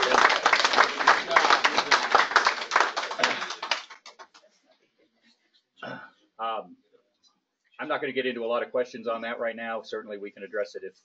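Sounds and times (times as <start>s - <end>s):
people applauding: 0.0s - 4.5s.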